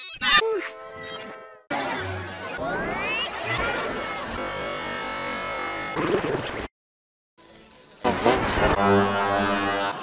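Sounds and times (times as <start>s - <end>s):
low horn-like note: 8.8s - 10.0s.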